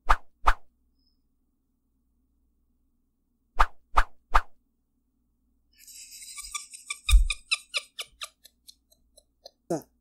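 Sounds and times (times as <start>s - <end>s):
woman's breathy laughter: 5.8s - 9.7s.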